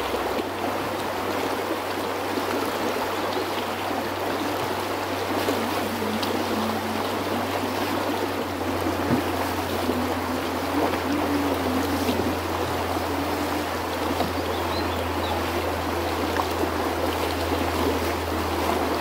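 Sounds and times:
creek rushing over rocks: 0.0 - 19.0.

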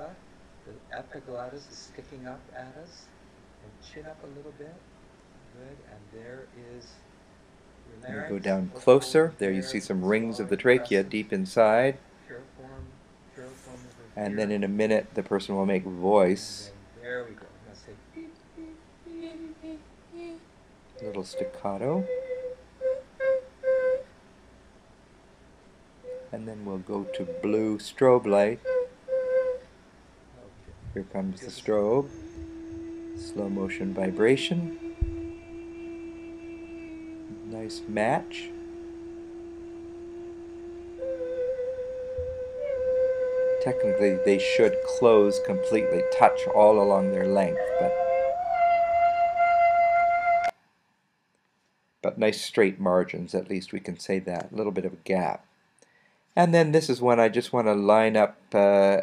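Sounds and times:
person holding high vowel: 8.1 - 11.1, 18.2 - 20.4, 26.1 - 29.6, 31.0 - 42.8, 43.9 - 48.3
person singing staccato notes: 18.1 - 20.4, 30.9 - 41.4.

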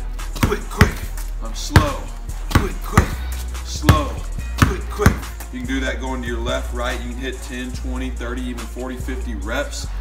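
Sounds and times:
basketball bouncing on concrete: 0.3 - 5.5.

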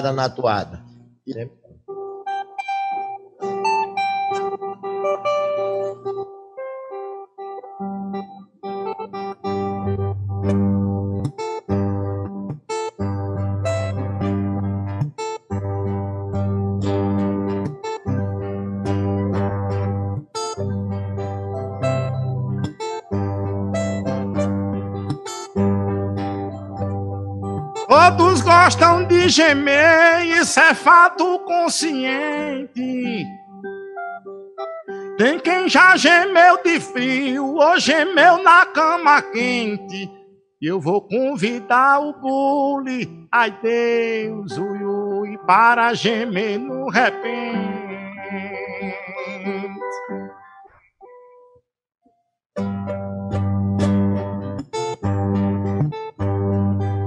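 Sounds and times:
acoustic guitars strumming: 1.9 - 6.2, 9.8 - 33.8, 34.9 - 50.4, 52.6 - 57.0
bass line: 9.6 - 31.0, 43.0 - 50.4, 52.6 - 57.0.

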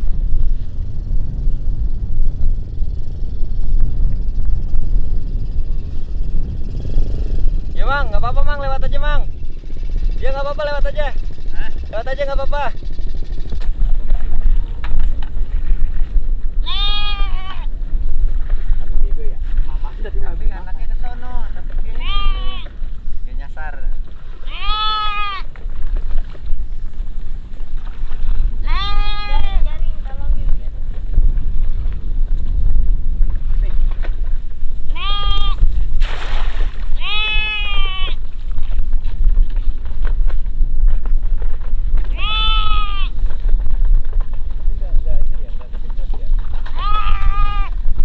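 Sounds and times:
steady low rumble: 0.0 - 48.0
sheep bleating: 16.6 - 17.7, 21.8 - 22.7, 24.4 - 25.5, 28.6 - 29.6, 34.9 - 35.6, 37.0 - 38.2, 42.1 - 43.1, 46.7 - 47.7
net splashing into water: 36.0 - 37.0.

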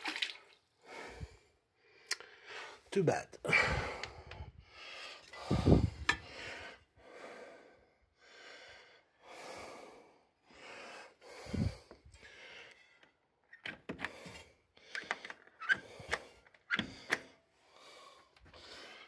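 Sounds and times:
person breathing noisily: 0.8 - 13.0, 14.1 - 19.0.

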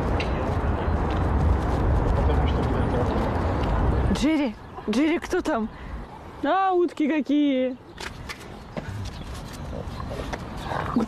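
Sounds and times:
steady low rumble: 0.0 - 4.8.

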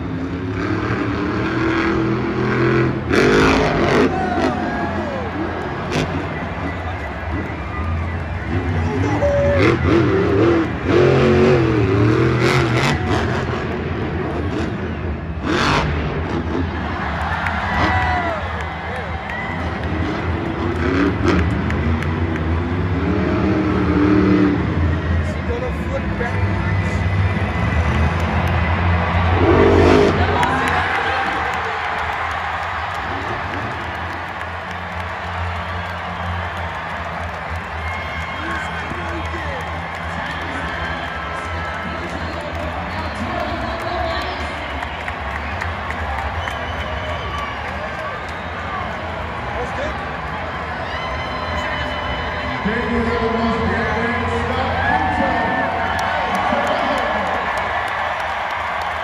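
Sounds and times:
crowd noise: 0.0 - 59.0
monster truck engines revving: 0.0 - 59.0
arena public address sound: 41.4 - 44.9, 52.6 - 57.6.

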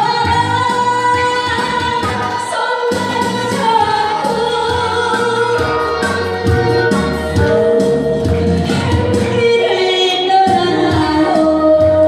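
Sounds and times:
woman singing: 0.0 - 12.0
music with steady low beat: 2.9 - 9.6.

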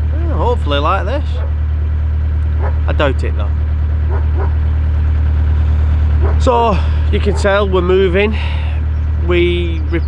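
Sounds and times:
boat diesel engine droning: 0.0 - 10.0.

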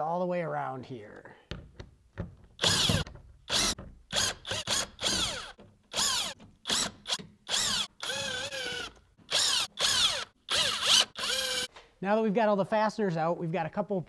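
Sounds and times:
cordless drill motor whine: 7.5 - 11.7.

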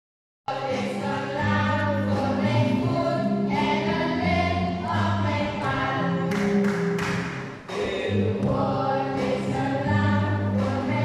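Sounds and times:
women singing: 0.5 - 6.7, 7.7 - 11.0
children's choir singing: 0.5 - 11.0.

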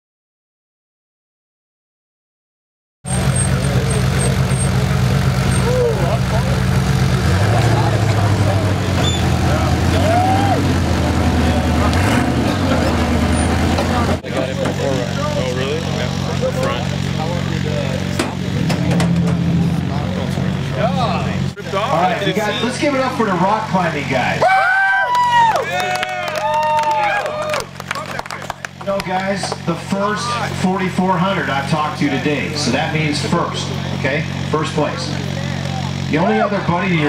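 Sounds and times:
race car engine idling: 3.1 - 24.6, 25.2 - 37.0
crowd voices: 3.1 - 37.0.

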